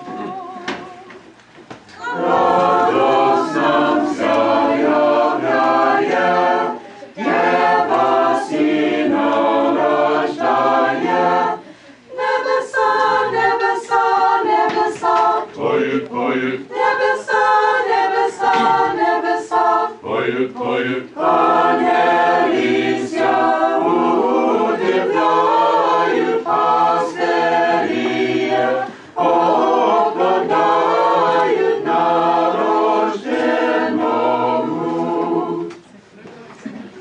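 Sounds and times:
choir singing a cappella: 0.0 - 1.2, 2.0 - 36.0.

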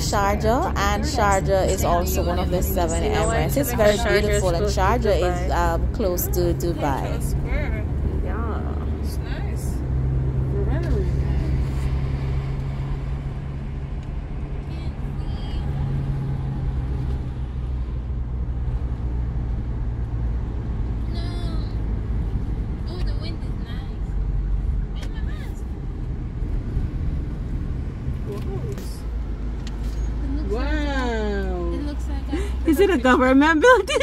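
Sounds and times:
car engine hum: 0.0 - 34.0.

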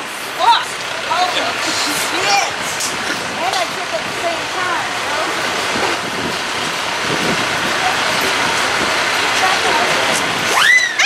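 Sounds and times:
background street hiss: 0.0 - 11.0
people talking nearby: 0.0 - 11.0.

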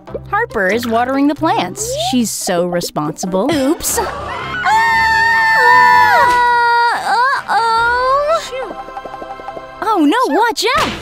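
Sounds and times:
woman screaming: 3.9 - 8.6.

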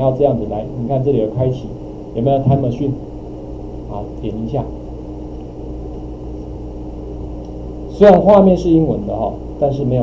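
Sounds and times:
faint microphone hiss: 0.0 - 10.0
low electrical hum: 0.0 - 10.0.

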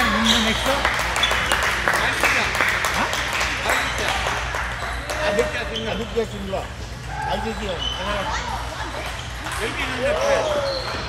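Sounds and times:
low hum of hall: 0.0 - 11.0.

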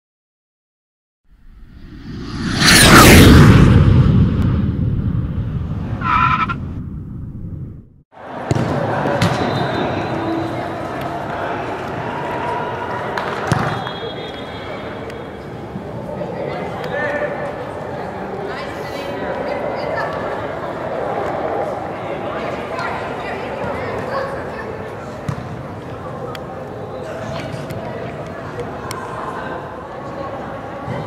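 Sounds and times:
whoosh effect falling in pitch: 1.5 - 6.8.

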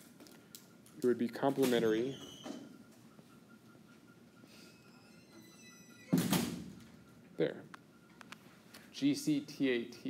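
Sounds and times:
faint high squeak: 1.9 - 2.8, 4.6 - 6.2.

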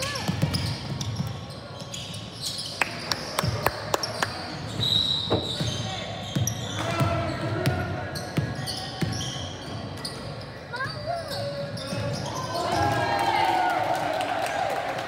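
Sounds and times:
sneakers squeaking: 0.0 - 13.0.

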